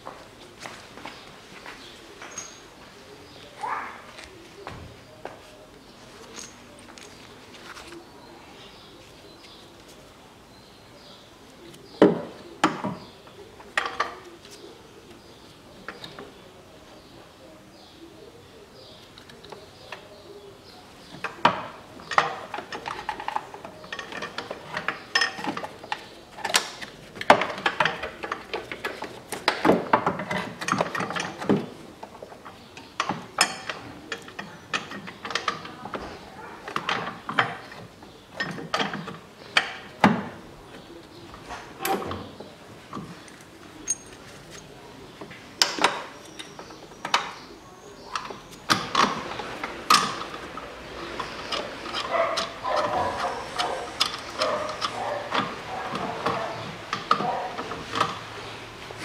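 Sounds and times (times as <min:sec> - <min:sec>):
metal tools clinking: 0:02.2 - 0:02.7, 0:06.2 - 0:07.3, 0:43.2 - 0:44.7.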